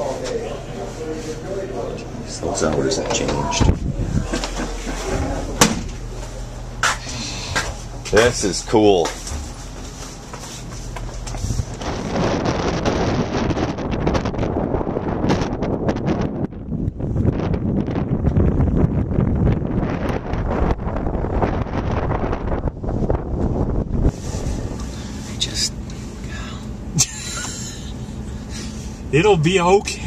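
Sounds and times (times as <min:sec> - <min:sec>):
wind blowing across microphone: 0:02.4 - 0:25.6.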